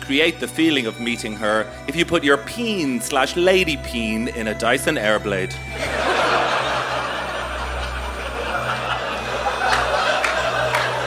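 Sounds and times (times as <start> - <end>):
audience laughing: 5.7 - 11.0
sharp claps: 9.7 - 11.0.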